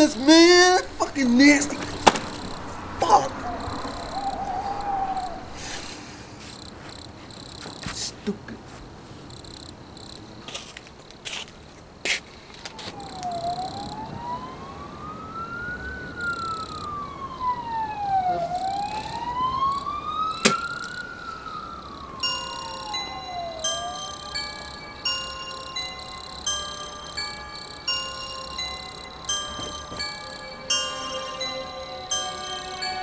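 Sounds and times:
chiming bell-like melody: 0.0s - 5.6s, 18.6s - 33.0s
emergency vehicle siren wailing: 0.0s - 7.1s, 12.5s - 33.0s.

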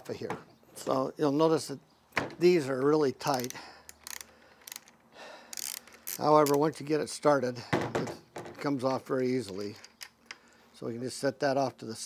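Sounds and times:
ratchet wrench clicking: 3.2s - 6.6s.

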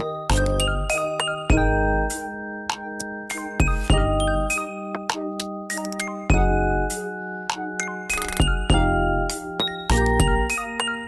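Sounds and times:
chiming background music: 0.0s - 11.0s.

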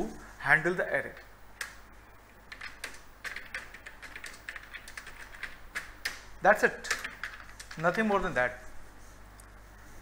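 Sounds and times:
computer keyboard typing: 1.1s - 1.8s, 2.5s - 8.2s.

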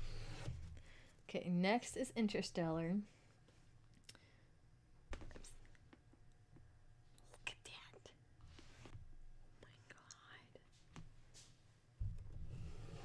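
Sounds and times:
faint whispering: 7.2s - 8.2s, 9.6s - 10.8s.

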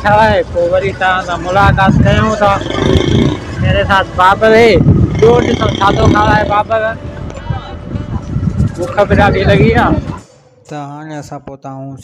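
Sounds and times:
low outdoor rumble: 0.0s - 10.6s
man talking: 3.5s - 7.0s.

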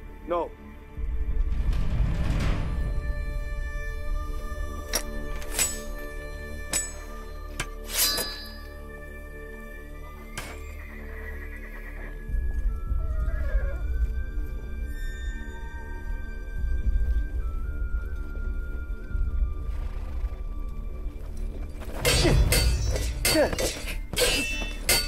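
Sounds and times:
orchestral film score: 0.0s - 25.0s
low drum rumble: 1.0s - 4.1s
metal weapons clinking: 4.9s - 8.8s, 22.0s - 25.0s
horse whinnying: 12.9s - 13.9s.

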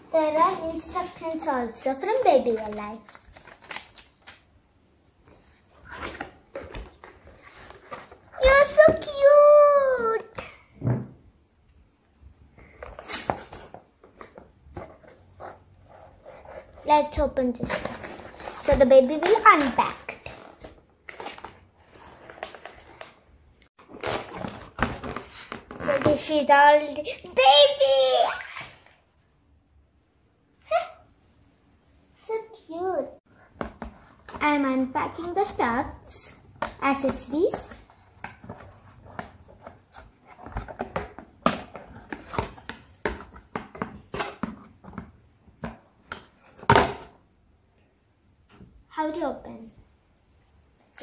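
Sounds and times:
cardboard and plastic crackling: 0.2s - 4.5s, 23.8s - 26.5s
cardboard rustling and scraping: 5.7s - 9.0s, 12.8s - 23.2s, 23.8s - 26.5s.

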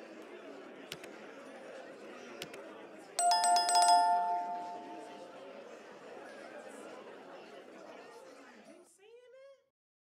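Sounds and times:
babble of many voices: 0.0s - 9.1s.

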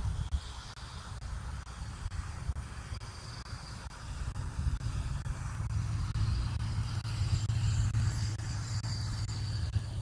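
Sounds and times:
cars going by rumbling: 0.0s - 10.0s.

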